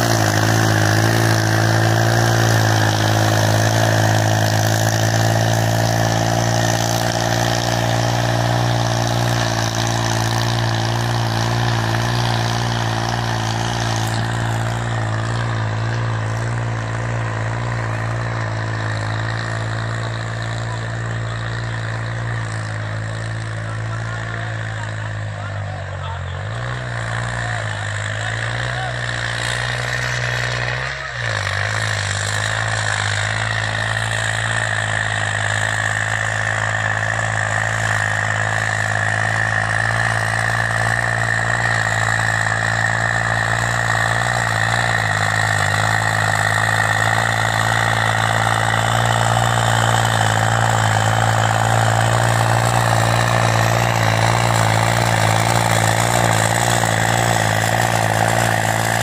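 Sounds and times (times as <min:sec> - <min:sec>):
tractor diesel engine running: 0:00.0 - 0:59.0.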